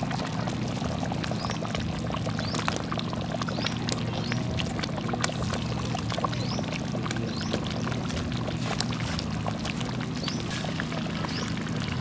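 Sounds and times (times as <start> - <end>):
soup boiling and bubbling: 0.0 - 12.0.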